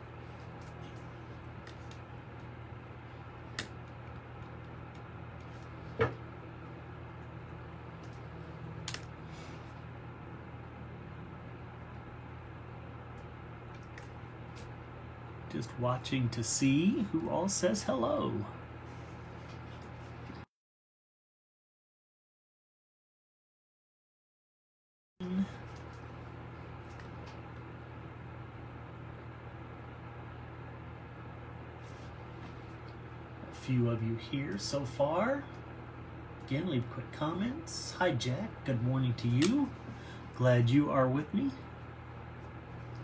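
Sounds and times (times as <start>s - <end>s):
low hum with hiss: 0.0s - 20.5s, 25.2s - 43.0s.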